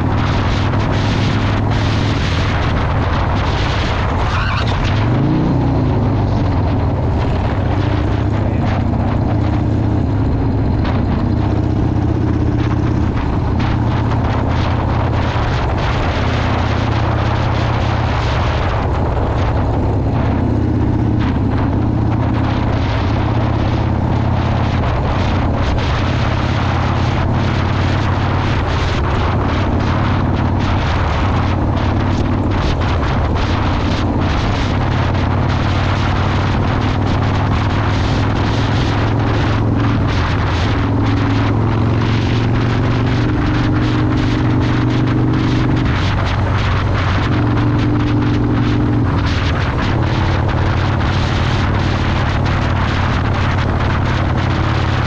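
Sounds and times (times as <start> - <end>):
motorcycle engine cruising: 0.0 - 55.0
wind rushing over microphone: 0.0 - 55.0.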